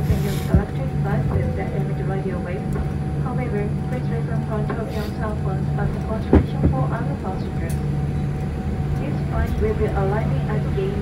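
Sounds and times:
jet engines humming: 0.0 - 11.0.

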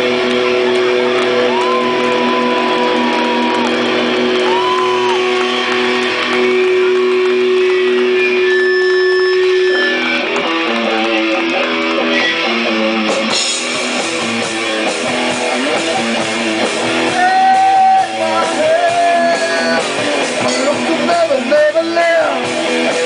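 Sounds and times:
electric guitars sustained notes: 0.0 - 23.0
live rock band: 0.0 - 23.0.

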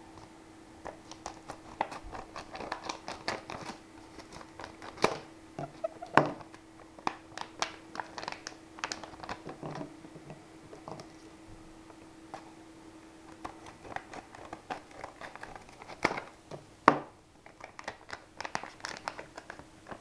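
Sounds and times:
plastic blister pack crackling: 0.9 - 9.9, 13.3 - 16.4, 17.4 - 20.0.

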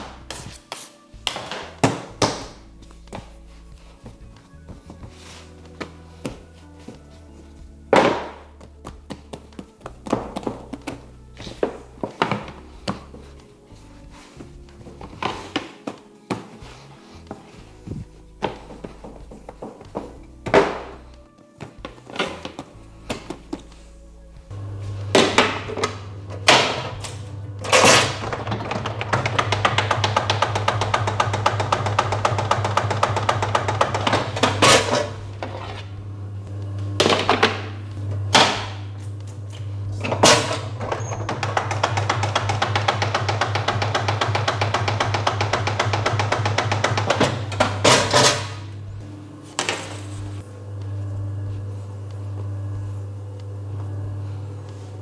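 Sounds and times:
machine motor hum: 16.6 - 55.0.

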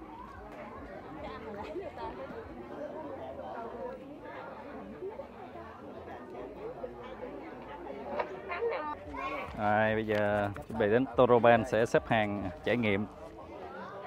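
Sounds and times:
people chattering quietly: 0.0 - 14.0.

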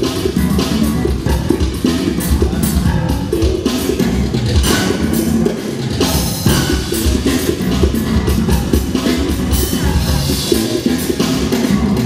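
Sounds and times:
drum kit: 0.0 - 12.0
electric bass guitar: 0.0 - 12.0
keyboard: 0.0 - 12.0.

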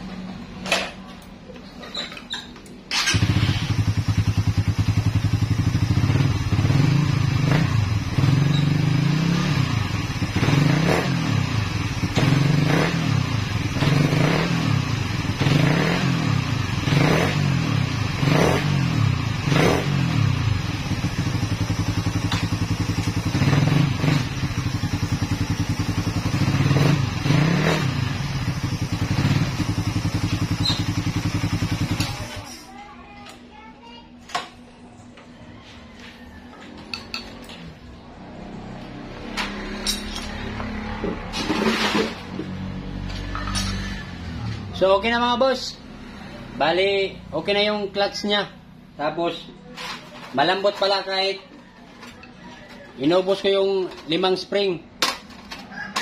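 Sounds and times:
motorcycle engine revving: 2.9 - 32.7, 37.1 - 49.0.

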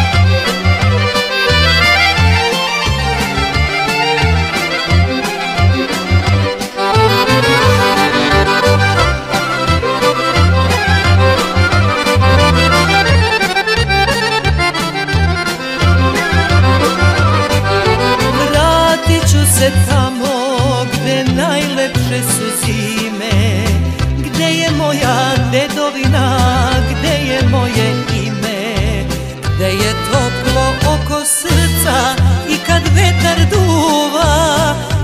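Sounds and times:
accordion melodic runs: 0.0 - 34.5
bass line: 0.0 - 35.0
steady drum beat: 0.1 - 19.8.

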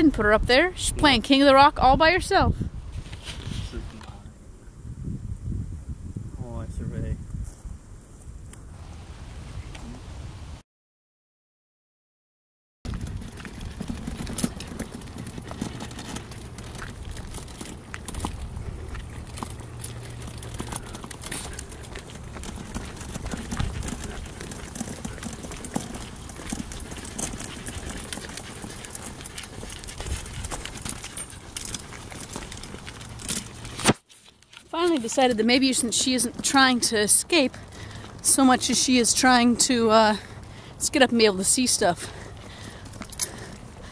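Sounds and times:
wagon rattling on asphalt: 12.8 - 43.9.

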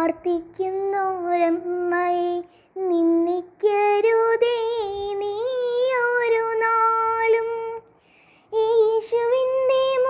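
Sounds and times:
girl singing: 0.0 - 10.0.

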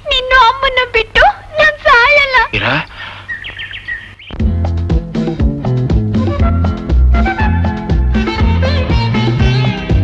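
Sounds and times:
faint high chirping: 2.3 - 4.4
film music with bass and percussion: 4.3 - 10.0.

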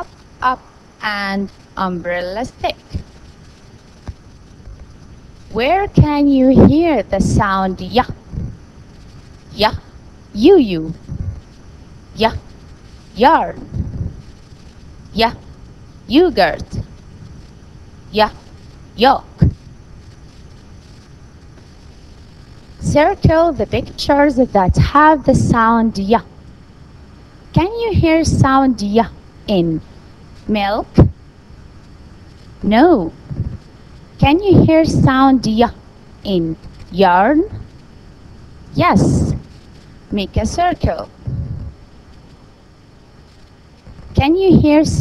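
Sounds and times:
background hiss: 0.0 - 45.0
faint hum: 0.0 - 45.0.

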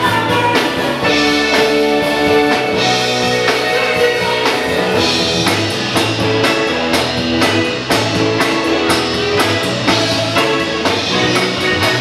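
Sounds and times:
drum kit beat: 0.0 - 12.0
electric guitar: 0.0 - 12.0.

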